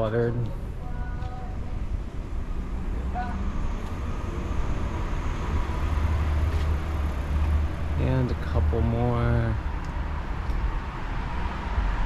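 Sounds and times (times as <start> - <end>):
road noise: 0.0 - 12.0
vehicle engine rumble: 0.0 - 12.0.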